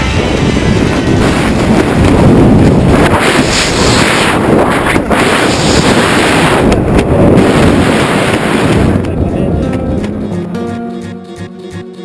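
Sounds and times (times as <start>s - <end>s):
wind rushing over microphone: 0.0s - 10.3s
guitar music: 9.0s - 12.0s.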